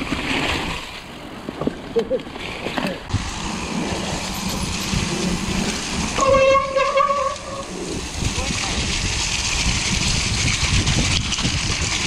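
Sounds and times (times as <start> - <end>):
bike rattles: 0.0 - 12.0
bike tyres rumbling on trail: 0.0 - 12.0
wind: 0.0 - 12.0
steady honking tone: 6.2 - 7.9.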